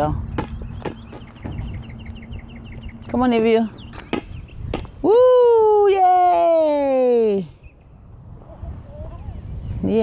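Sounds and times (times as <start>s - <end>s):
bird chirping rapidly: 0.2s - 5.0s.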